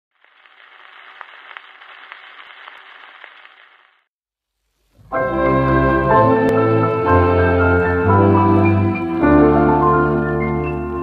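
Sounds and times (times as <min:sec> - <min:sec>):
record surface hiss: 0:00.1 - 0:11.0.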